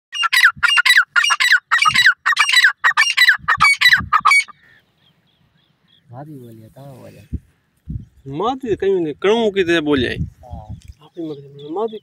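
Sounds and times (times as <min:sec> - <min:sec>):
francolin calling: 0:00.2 - 0:06.2, 0:11.0 - 0:12.0.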